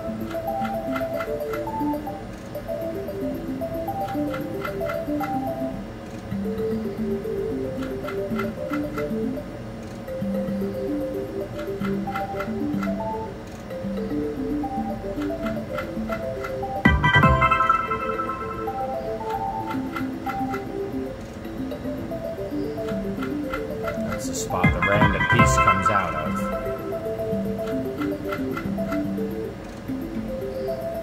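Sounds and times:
slot machine tune of plinking notes: 0:00.0 - 0:09.5, 0:10.1 - 0:31.0
reels stopping ticks: 0:00.0 - 0:17.0, 0:17.7 - 0:31.0.

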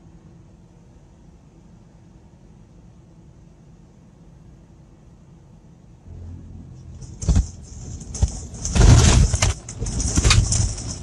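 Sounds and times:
low rumble: 0:06.0 - 0:11.0
loud bangs and clattering: 0:06.1 - 0:11.0
truck cab rattling: 0:06.9 - 0:11.0.

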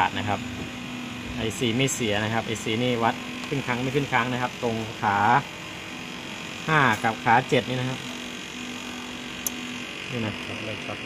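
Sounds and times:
man speaking: 0:10.1 - 0:11.0.

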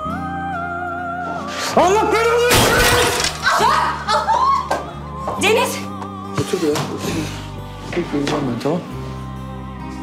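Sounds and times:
glass shattering on floor: 0:02.5 - 0:03.8.

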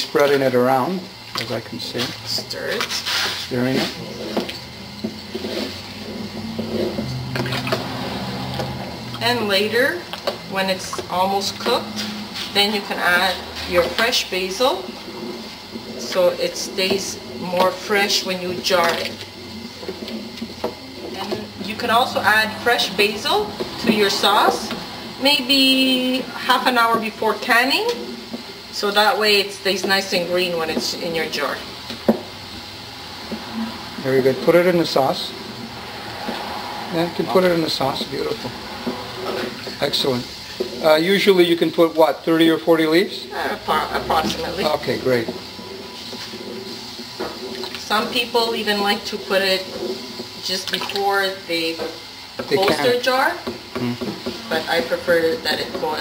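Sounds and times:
propane burner rushing: 0:00.0 - 0:56.0
steady low hum: 0:00.0 - 0:56.0
wooden paddle knocking in pot: 0:29.7 - 0:31.0, 0:31.8 - 0:32.3, 0:51.7 - 0:56.0
thick sauce sloshing: 0:43.9 - 0:48.0.

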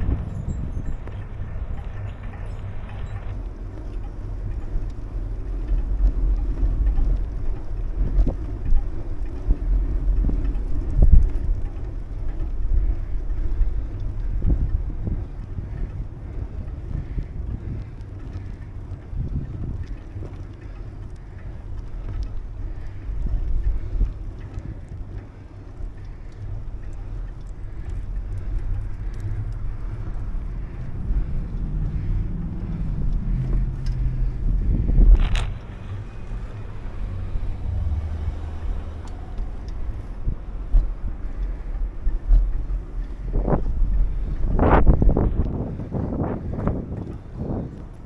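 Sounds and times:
tyres rolling on pavement: 0:00.0 - 0:48.0
wind buffeting microphone: 0:00.0 - 0:48.0.

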